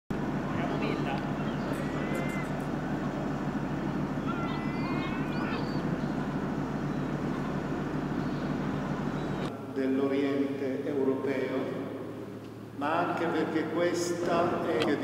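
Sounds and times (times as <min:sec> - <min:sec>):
traffic rumble: 0:00.1 - 0:15.0
indistinct voices: 0:00.2 - 0:11.3.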